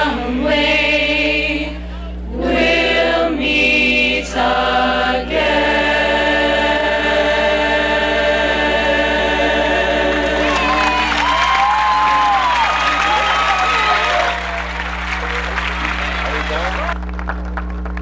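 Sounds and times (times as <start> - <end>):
mixed choir singing: 0.0 - 12.5.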